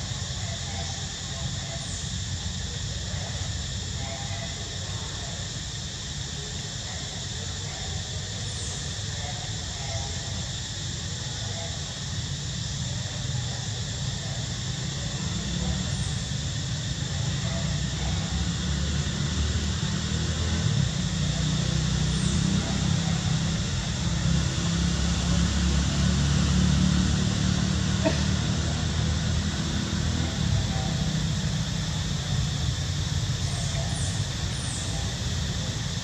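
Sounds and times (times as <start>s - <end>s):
even hiss: 0.0s - 36.0s.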